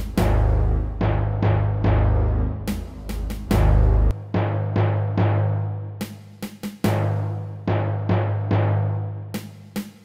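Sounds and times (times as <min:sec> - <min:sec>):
timpani strikes: 0:00.0 - 0:09.5.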